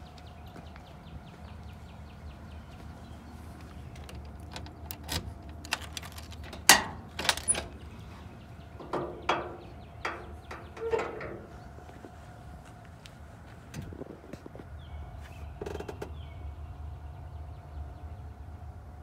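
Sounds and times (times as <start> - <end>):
car keys jangling in lock: 4.0 - 7.7
trunk latch clunk: 8.8 - 11.5
trunk lid knocks and clicks: 8.8 - 11.6.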